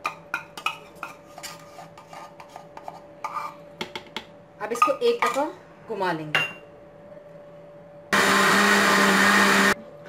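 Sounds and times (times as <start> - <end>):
electric blender motor running: 8.1 - 9.8.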